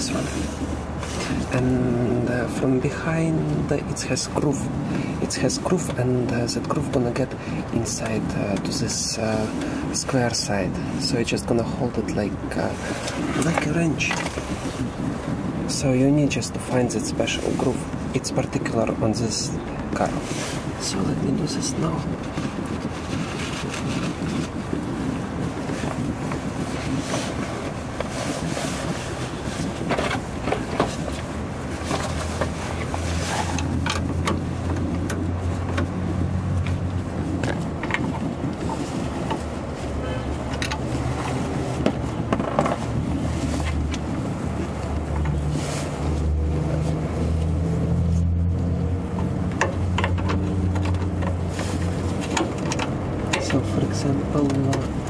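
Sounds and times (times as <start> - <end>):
low motor rumble: 19.4 - 55.0.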